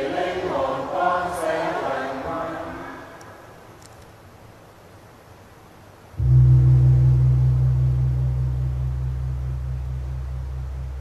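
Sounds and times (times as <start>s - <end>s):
low-pitched gong ringing: 6.2s - 11.0s.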